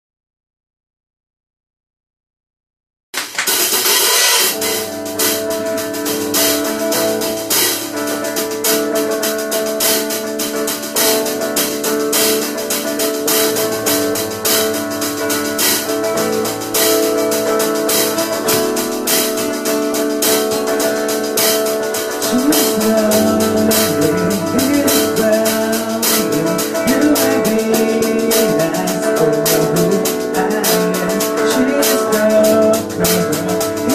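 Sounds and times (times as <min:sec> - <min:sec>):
live band playing instrumental: 0:03.2 - 0:33.9.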